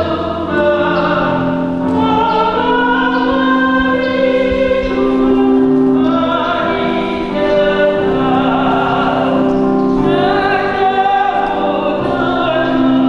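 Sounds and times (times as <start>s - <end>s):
choir singing held chords: 0.0s - 13.0s.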